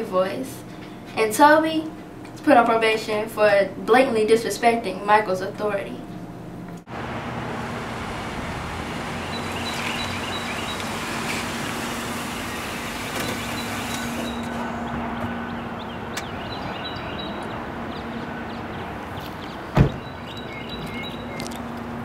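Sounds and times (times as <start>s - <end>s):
car engine hum: 6.8s - 16.4s.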